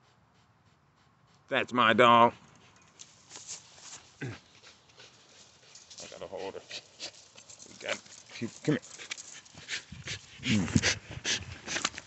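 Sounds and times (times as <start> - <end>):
rustling movement in grass: 2.9 - 10.7.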